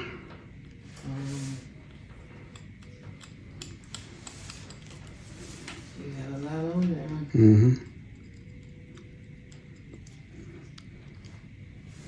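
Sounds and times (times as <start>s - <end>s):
person humming: 7.2s - 8.0s.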